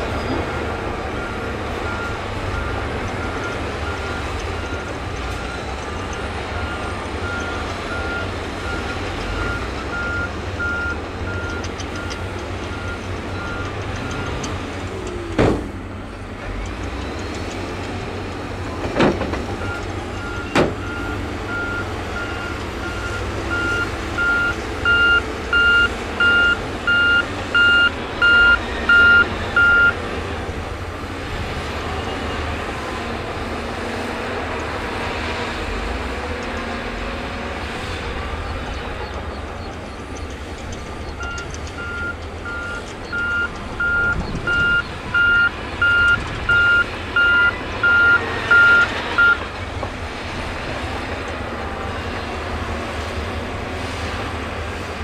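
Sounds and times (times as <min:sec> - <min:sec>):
diesel engines rumbling: 0:00.0 - 0:55.0
reversing alarm beeping: 0:00.2 - 0:14.4, 0:19.6 - 0:30.0, 0:41.2 - 0:49.4.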